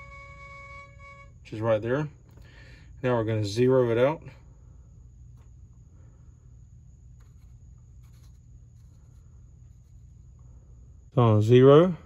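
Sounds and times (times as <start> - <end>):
low steady hum: 0.0 - 12.0
faint scraping of bezel: 7.0 - 10.7.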